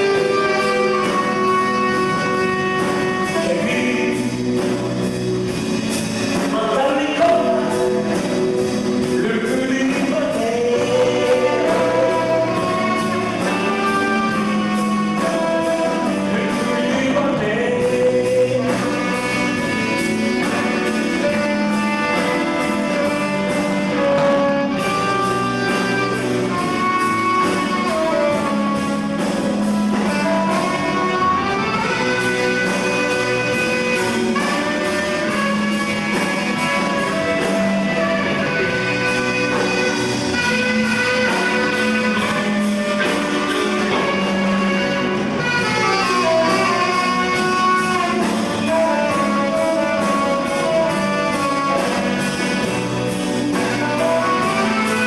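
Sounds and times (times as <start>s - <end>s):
drums keeping a steady beat: 0.0s - 55.0s
electric guitars: 0.0s - 55.0s
keyboard: 0.0s - 55.0s
saxophone melody: 0.0s - 55.0s.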